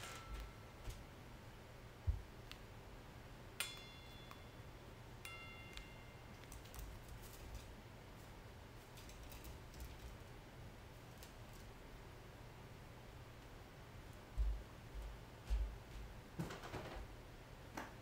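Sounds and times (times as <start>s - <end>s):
beak clinking steel bowl: 3.6s - 6.4s.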